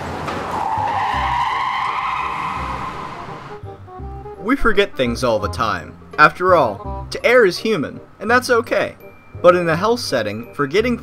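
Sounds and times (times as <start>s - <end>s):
car tyres squealing: 0.0s - 3.8s
background music: 0.6s - 11.0s.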